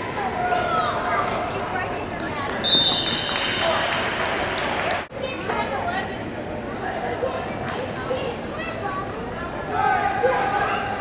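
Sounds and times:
crowd voices: 0.0 - 11.0
referee's whistle blast: 2.6 - 3.7.

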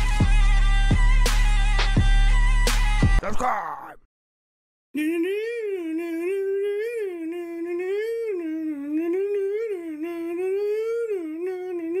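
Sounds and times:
person humming a tune: 5.0 - 12.0.

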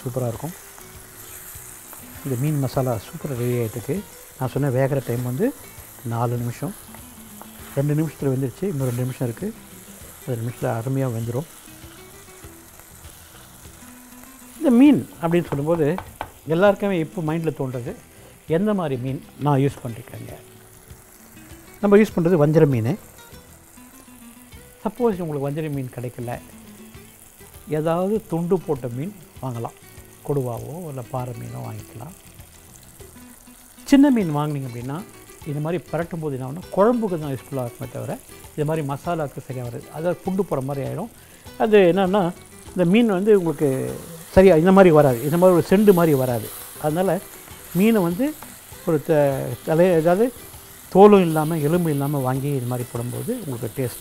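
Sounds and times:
faint background hiss: 0.0 - 54.0
fish sizzling in pot: 0.0 - 54.0
man speaking: 33.9 - 47.2, 51.0 - 54.0.

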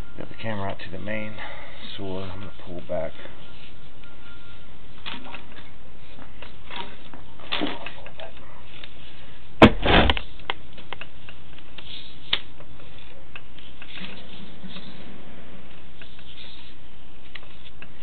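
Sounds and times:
loud knock: 9.6 - 10.2.

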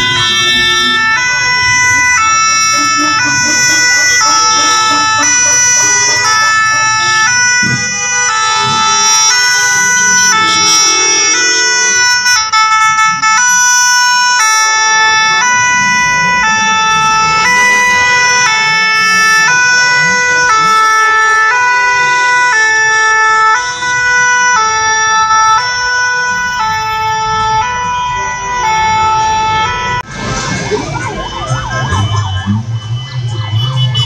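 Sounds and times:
street traffic rumbling: 0.0 - 34.0
two-tone ambulance siren: 0.0 - 34.0.

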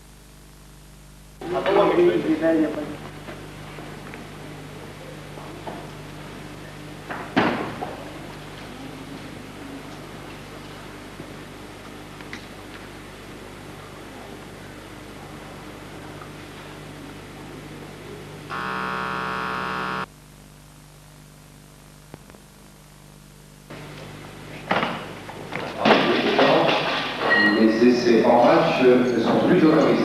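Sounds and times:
steady buzzing tone: 0.0 - 1.6, 18.4 - 24.6.

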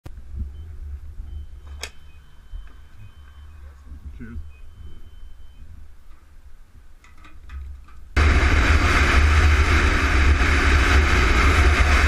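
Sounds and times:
low rumble: 0.1 - 7.0, 7.7 - 12.0
keypad beeping: 1.3 - 5.7.

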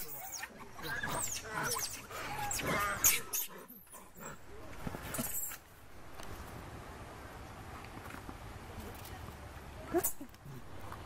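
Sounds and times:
monkeys squealing: 0.0 - 4.4.

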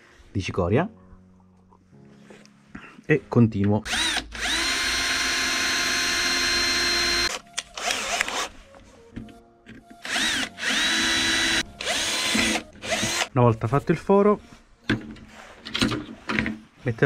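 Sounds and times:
cordless drill whining: 3.9 - 8.5, 10.0 - 13.3.

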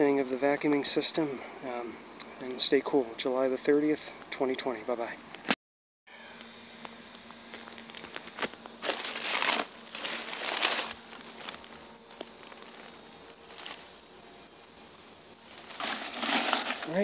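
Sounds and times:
papery crinkling and rustling: 7.4 - 13.9, 15.5 - 17.0.

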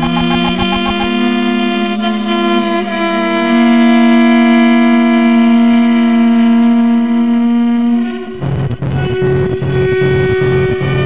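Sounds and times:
drone music held note: 0.0 - 9.9.

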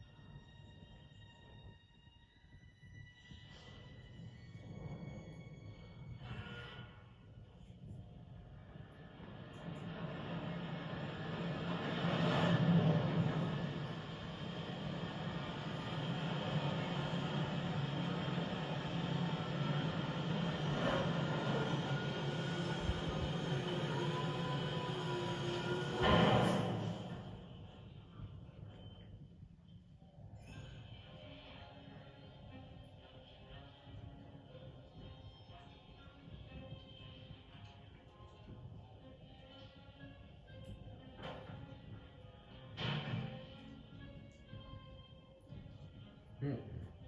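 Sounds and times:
low rumble of draught: 2.4 - 39.4.

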